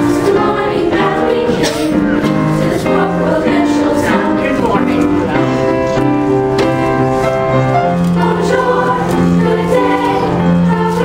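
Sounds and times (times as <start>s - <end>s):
choir singing: 0.0s - 6.2s, 7.7s - 11.0s.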